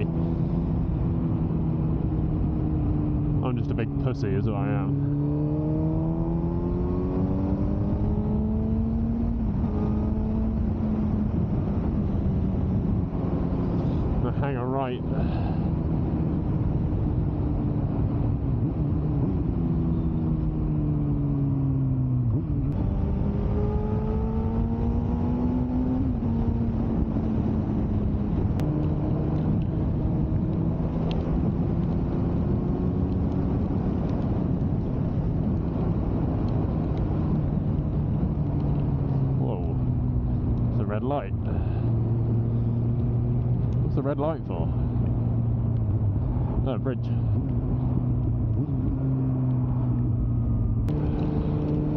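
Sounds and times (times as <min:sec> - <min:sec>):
motorcycle engine: 0:00.0 - 0:51.9
wind and road noise: 0:00.0 - 0:51.9.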